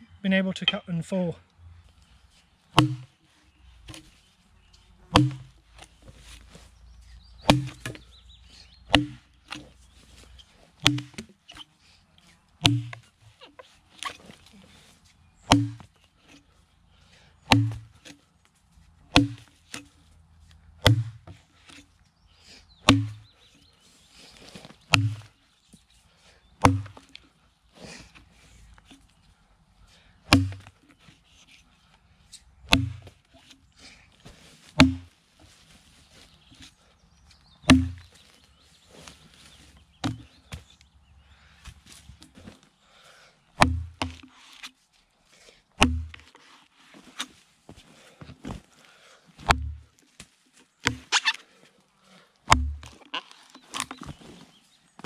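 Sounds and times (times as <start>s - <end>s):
axe chopping log: 2.8s - 3.1s, 5.1s - 5.6s, 7.4s - 8.0s, 8.9s - 9.7s, 10.8s - 11.4s, 12.6s - 13.1s, 15.4s - 15.9s, 17.5s - 18.2s, 19.1s - 19.9s, 20.8s - 21.8s, 22.8s - 23.3s, 24.9s - 25.4s, 26.6s - 27.2s, 30.2s - 30.8s, 32.7s - 33.6s, 34.7s - 35.1s, 37.6s - 38.1s, 40.0s - 40.7s, 43.6s - 44.3s, 45.8s - 46.3s, 49.4s - 50.0s, 50.8s - 51.3s, 52.5s - 53.0s.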